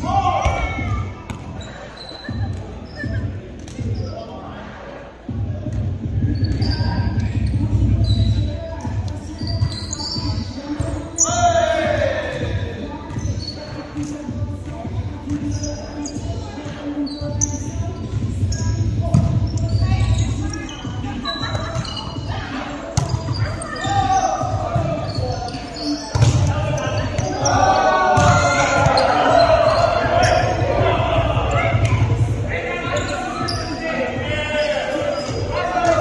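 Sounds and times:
brief squeak: 0:01.6 - 0:03.1.

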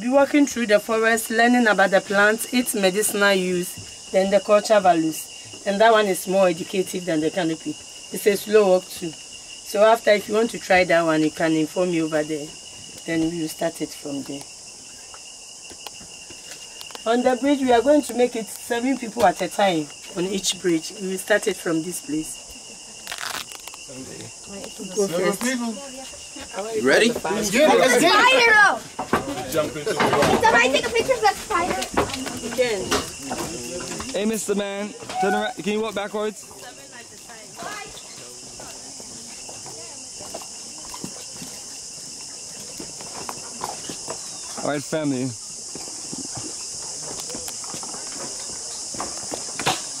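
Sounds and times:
people talking: 0:00.0 - 0:14.4, 0:17.0 - 0:23.0, 0:23.9 - 0:40.4
insects droning: 0:00.0 - 0:50.0
footsteps on wooden planks: 0:25.4 - 0:44.8, 0:45.6 - 0:50.0.

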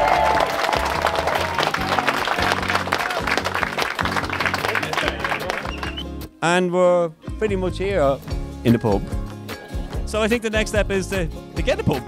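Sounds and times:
people applauding: 0:00.0 - 0:06.2
background music: 0:00.0 - 0:12.0.

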